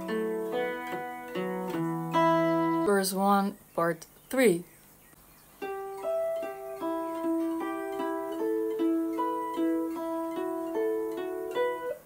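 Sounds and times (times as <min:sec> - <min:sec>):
electric guitar picked riff: 0:00.0 - 0:02.9.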